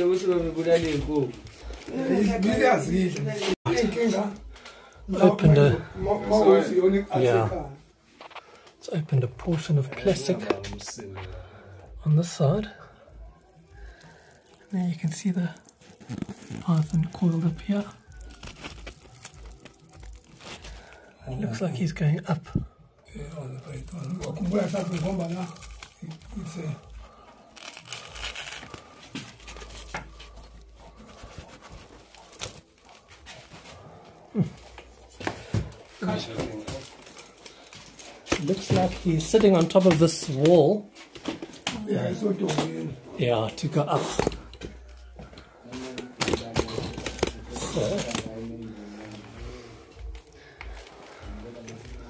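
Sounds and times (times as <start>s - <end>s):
plastic sheet crinkling: 13.4s - 21.1s, 23.4s - 34.0s, 45.8s - 49.2s
plastic sheet tearing: 14.8s - 20.8s, 27.5s - 33.1s, 46.2s - 48.4s.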